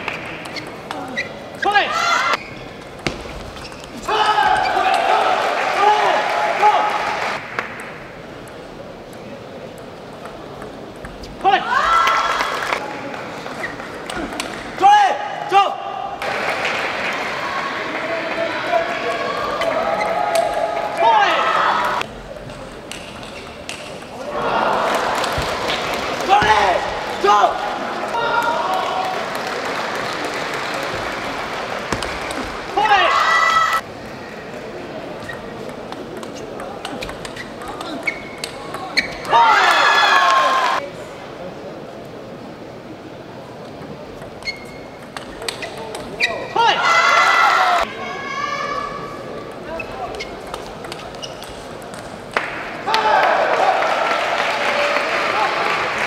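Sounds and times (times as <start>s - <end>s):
table tennis ball bouncing: 31.9s - 32.6s, 44.2s - 46.1s.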